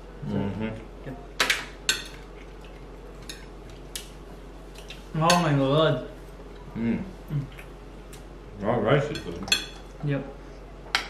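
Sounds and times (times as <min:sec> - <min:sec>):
utensils clinking on plates: 0:09.1 - 0:09.9.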